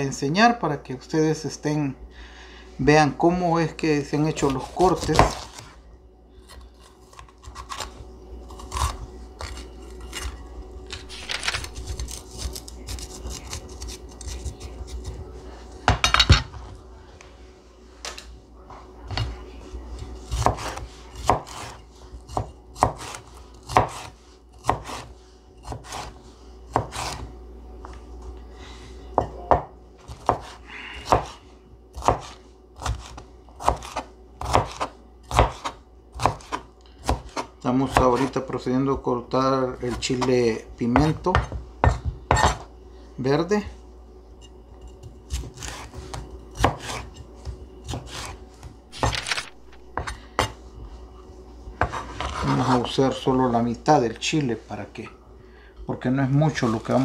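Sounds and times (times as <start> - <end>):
knife chopping on cutting board: 4.4 - 5.7, 20.0 - 27.3, 29.2 - 38.4, 39.8 - 42.7, 45.0 - 50.6, 51.8 - 52.8.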